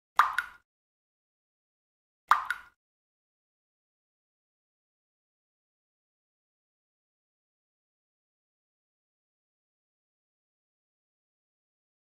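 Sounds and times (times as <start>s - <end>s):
water drops plopping: 0.2s - 0.7s, 2.3s - 2.8s.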